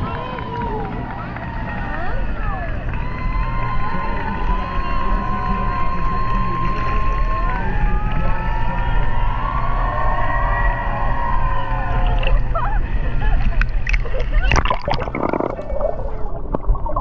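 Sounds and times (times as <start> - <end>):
low rumble: 0.0 - 17.0
sea water sloshing: 12.0 - 17.0.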